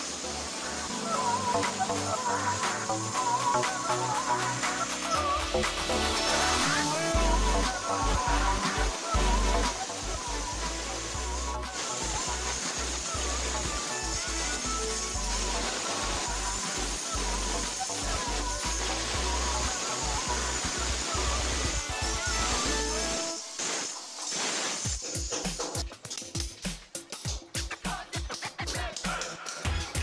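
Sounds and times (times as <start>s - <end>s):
melody over bass beat: 4.4s - 23.2s, 29.7s - 30.0s.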